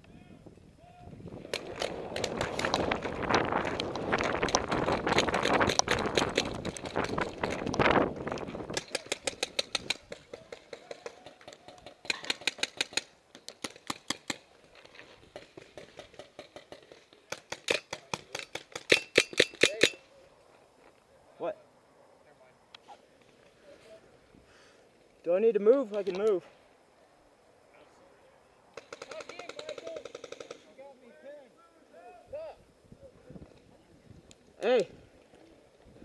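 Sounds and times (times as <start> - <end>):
paintball markers firing: 1.4 - 7.8, 8.4 - 14.4, 15.2 - 20.0, 28.8 - 30.7.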